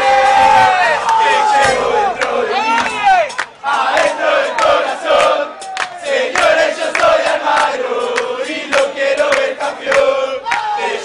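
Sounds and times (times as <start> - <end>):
crowd chanting in unison: 0.0 - 11.0
sharp percussive hits: 1.4 - 10.0.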